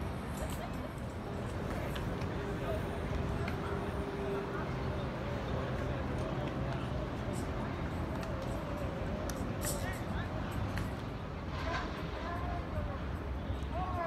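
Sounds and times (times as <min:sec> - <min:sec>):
distant people talking and calling: 0:00.0 - 0:14.0.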